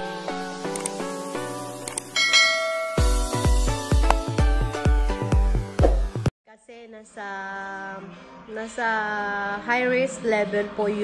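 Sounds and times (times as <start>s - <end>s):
high bell ding: 2.2s - 3.5s
bell-like chiming tones: 2.2s - 3.6s.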